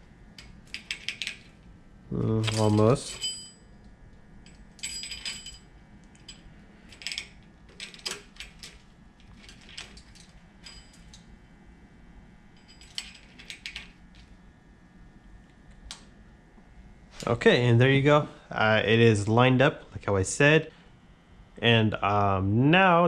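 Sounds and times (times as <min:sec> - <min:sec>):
metallic clinks of timing chain: 0:02.3 - 0:03.6, 0:04.4 - 0:08.2.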